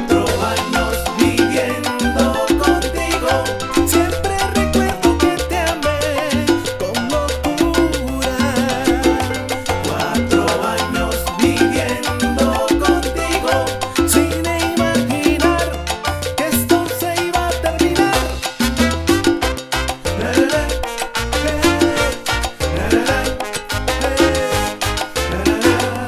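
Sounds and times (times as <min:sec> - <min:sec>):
salsa band music: 0:00.0 - 0:26.0.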